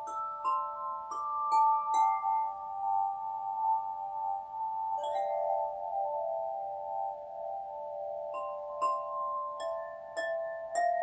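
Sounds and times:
metal chime bars ringing: 0:00.0 - 0:11.0.

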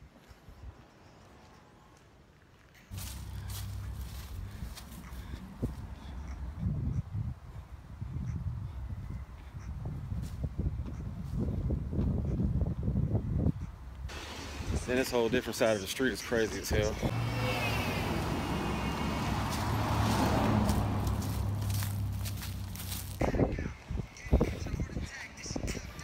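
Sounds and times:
wind buffeting microphone: 0:03.4 - 0:14.9, 0:19.5 - 0:26.0.

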